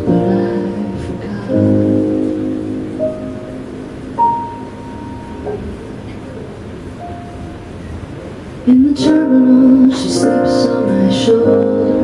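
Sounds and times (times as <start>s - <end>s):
slow solo piano: 0.0s - 12.0s.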